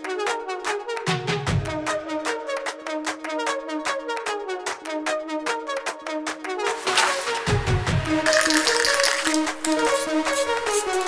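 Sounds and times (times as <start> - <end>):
music with steady beat: 0.1 - 11.0.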